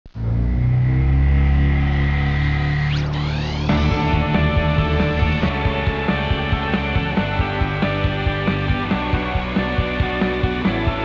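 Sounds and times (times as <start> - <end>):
engine drone with high whine: 0.1 - 9.2.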